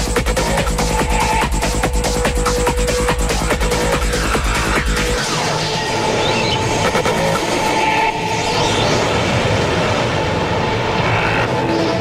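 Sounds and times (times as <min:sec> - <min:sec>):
kick drum beat: 0:00.0 - 0:05.1
rumbling noise texture: 0:00.0 - 0:12.0.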